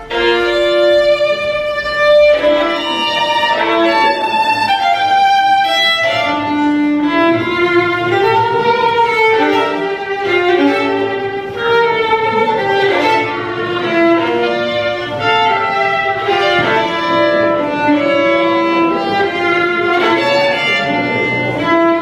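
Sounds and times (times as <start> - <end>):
bowed violin melody: 0.0 - 22.0.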